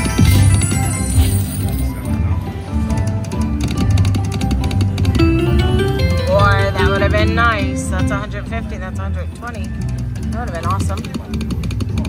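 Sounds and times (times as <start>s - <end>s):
slot machine game music: 0.0s - 9.5s.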